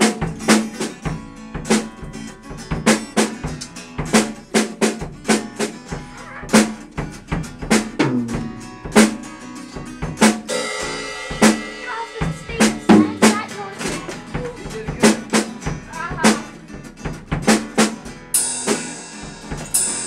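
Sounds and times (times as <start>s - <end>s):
acoustic guitar strumming: 0.0s - 20.0s
bass drum and snare strokes: 0.0s - 20.0s
cymbal ringing: 10.5s - 12.6s.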